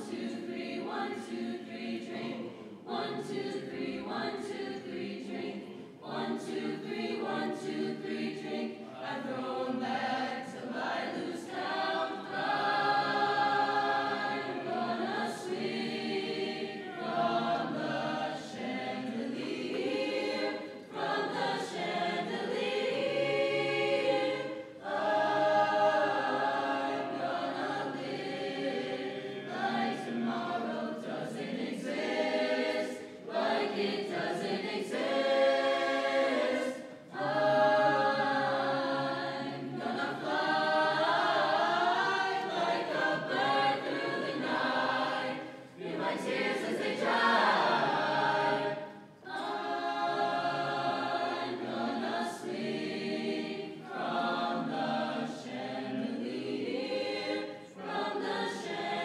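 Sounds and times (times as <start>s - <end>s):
choir singing in parts: 0.0s - 59.0s.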